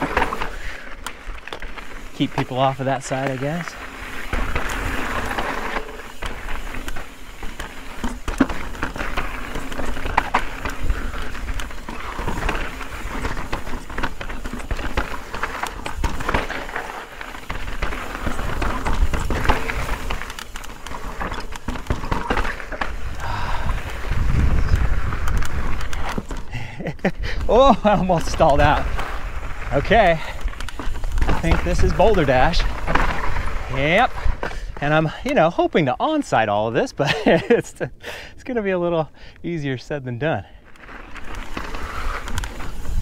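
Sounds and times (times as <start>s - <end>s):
bike tyres crunching over gravel: 0.0s - 43.0s
bike chain and frame clicking: 3.2s - 34.6s.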